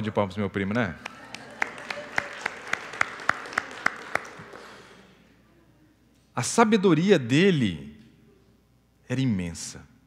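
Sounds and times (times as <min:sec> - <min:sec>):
sharp even hand claps: 0:00.7 - 0:05.0
audience applauding: 0:01.0 - 0:05.2.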